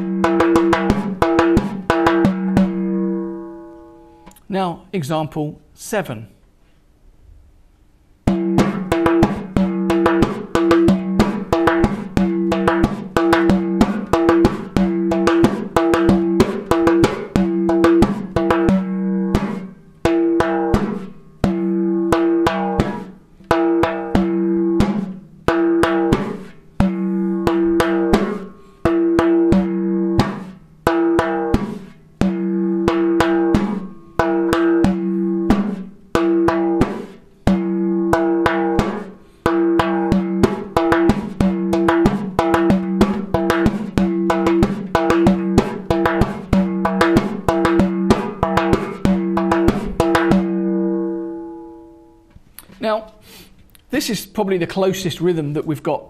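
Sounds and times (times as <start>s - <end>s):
frame drum played by hand: 0.0s - 3.5s, 8.2s - 51.1s.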